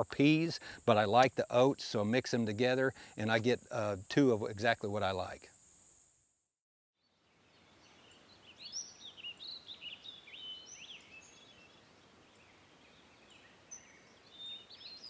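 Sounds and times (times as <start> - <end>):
faint outdoor background: 0.0 - 15.0
songbirds chirping and whistling: 7.1 - 15.0.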